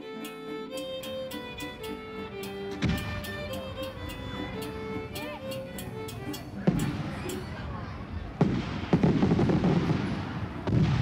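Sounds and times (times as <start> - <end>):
loud gunpowder bangs: 8.4 - 11.0.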